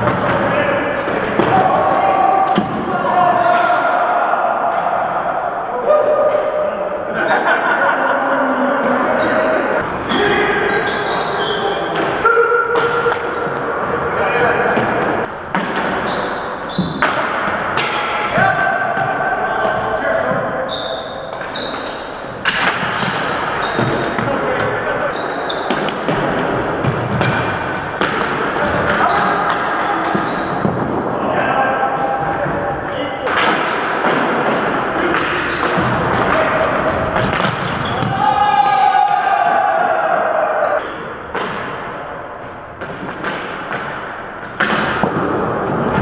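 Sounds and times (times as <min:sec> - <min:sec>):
players calling out: 0:00.0 - 0:42.3
sneakers squeaking: 0:09.1 - 0:17.6, 0:19.0 - 0:31.2, 0:35.5 - 0:38.3.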